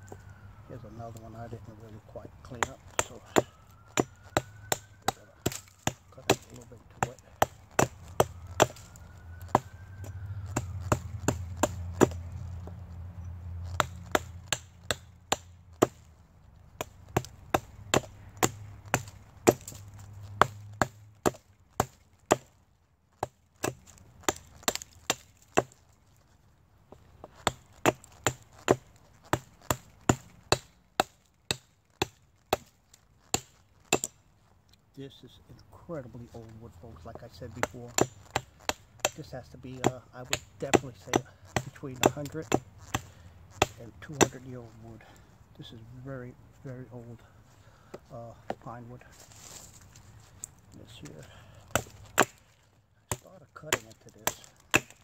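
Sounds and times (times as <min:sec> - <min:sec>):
blade chopping wood: 0:02.4 - 0:12.8, 0:13.6 - 0:16.1, 0:16.8 - 0:22.6, 0:23.2 - 0:25.8, 0:26.9 - 0:34.2, 0:37.1 - 0:45.2, 0:50.4 - 0:55.0.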